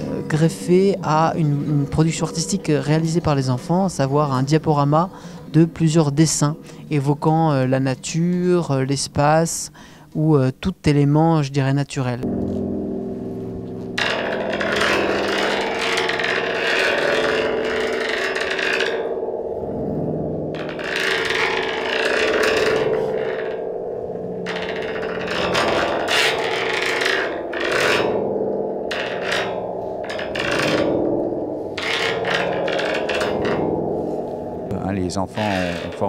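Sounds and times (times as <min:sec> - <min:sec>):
stick scraping metal rod: 0:00.0 - 0:08.8, 0:13.6 - 0:36.0
ringing drone: 0:00.0 - 0:09.1, 0:12.2 - 0:36.0.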